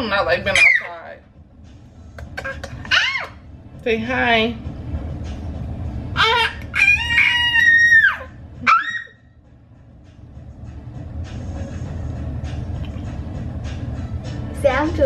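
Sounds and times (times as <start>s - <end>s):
low steady hum: 0.0s - 15.0s
baby squealing: 2.4s - 3.4s, 6.2s - 9.3s.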